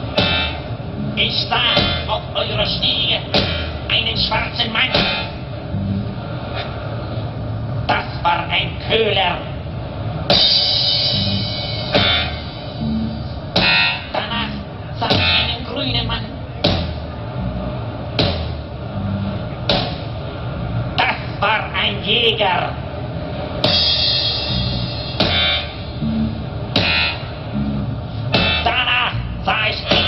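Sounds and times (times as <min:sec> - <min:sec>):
sharp accented hit: 0:00.0 - 0:02.2, 0:10.3 - 0:15.6, 0:23.6 - 0:28.9
live band music: 0:00.0 - 0:02.3, 0:05.0 - 0:05.4, 0:10.3 - 0:15.7, 0:23.6 - 0:28.8
buzzy sustained chord: 0:00.0 - 0:07.8, 0:09.5 - 0:16.5, 0:22.3 - 0:28.7
low bass notes: 0:00.0 - 0:30.0.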